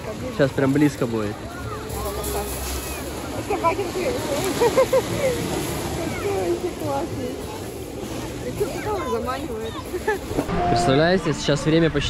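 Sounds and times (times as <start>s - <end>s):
background chatter of voices: 0.0s - 12.0s.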